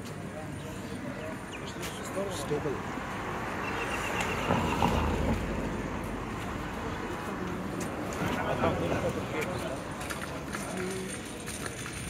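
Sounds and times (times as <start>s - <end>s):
car passing by: 2.5s - 9.2s.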